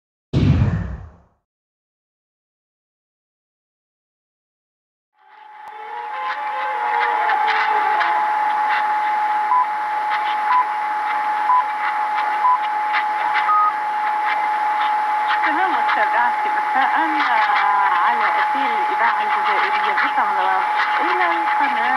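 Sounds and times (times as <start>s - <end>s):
radio static hiss and crackle: 5.2s - 21.9s
steady radio whistle: 5.2s - 21.9s
time signal pips: 5.4s - 21.9s
voice on radio: 14.4s - 21.9s.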